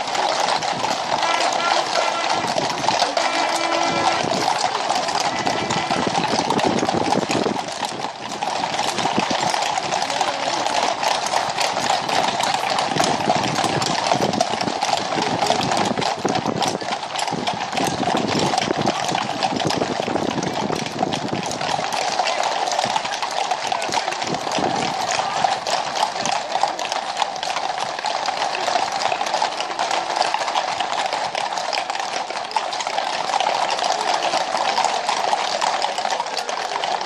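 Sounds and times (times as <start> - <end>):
horse hooves on tarmac: 0.0 - 37.0.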